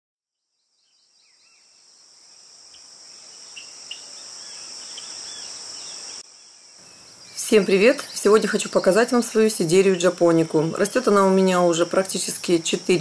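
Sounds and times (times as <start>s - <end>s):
insects trilling: 0.7s - 13.0s.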